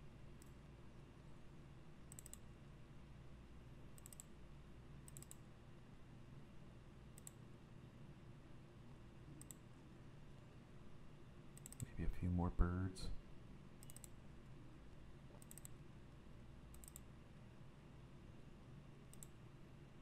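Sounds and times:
faint steady hum: 0.0 - 20.0
computer mouse clicks: 0.4 - 0.6, 2.1 - 2.5, 4.0 - 4.4, 5.0 - 5.5, 7.1 - 7.4, 9.4 - 9.7, 11.5 - 11.9, 13.8 - 14.2, 15.3 - 15.8, 16.7 - 17.1, 19.1 - 19.4.

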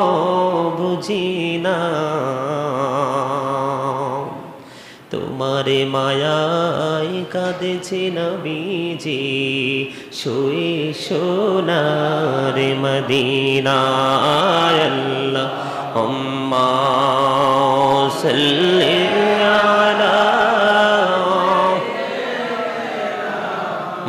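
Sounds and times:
man chanting in drawn-out style: 0.0 - 21.8.

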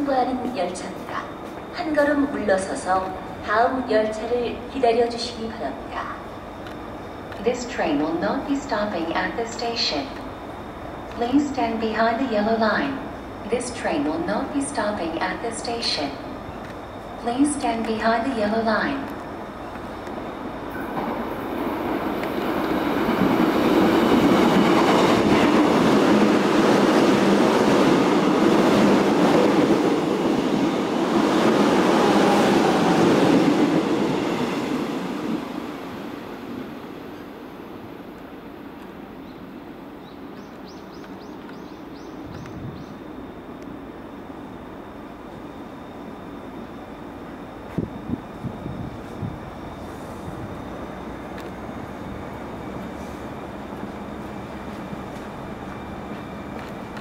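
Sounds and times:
electric train passing at speed: 0.0 - 57.0.

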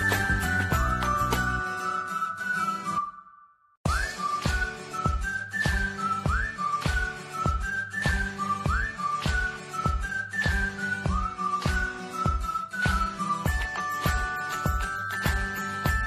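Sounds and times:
whistle-like melody: 0.0 - 16.0.

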